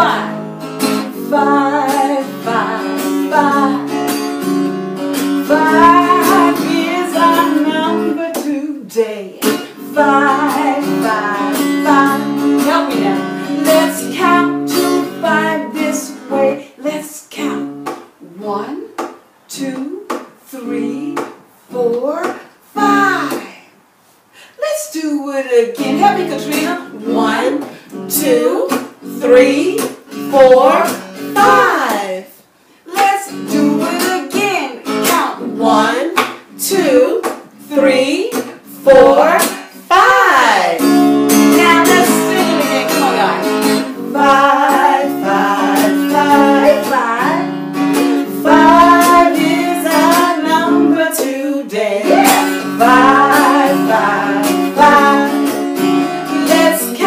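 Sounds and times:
woman singing: 0.0s - 4.2s, 5.4s - 23.7s, 25.0s - 32.3s, 32.9s - 57.0s
acoustic guitar strumming: 0.0s - 18.2s, 25.6s - 32.1s, 32.9s - 57.0s.

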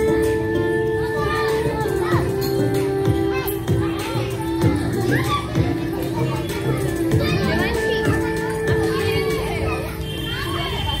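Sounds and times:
music with long held notes: 0.0s - 10.0s
children chattering and calling out: 0.0s - 11.0s.

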